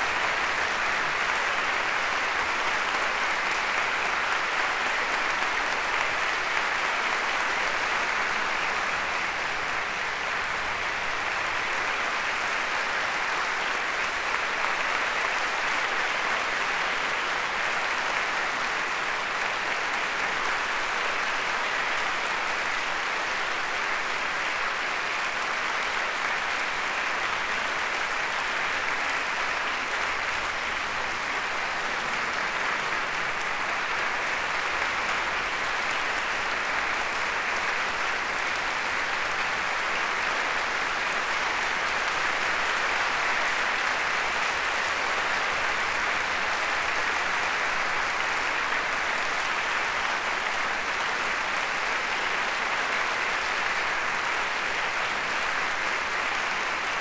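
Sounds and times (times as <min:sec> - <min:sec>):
audience applause: 0:00.0 - 0:57.0.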